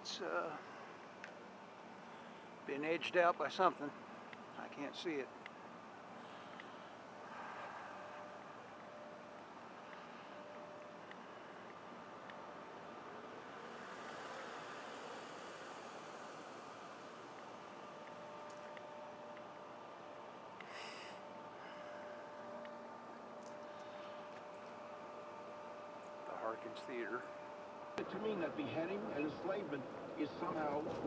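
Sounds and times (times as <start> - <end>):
low hiss: 0.0 - 25.1.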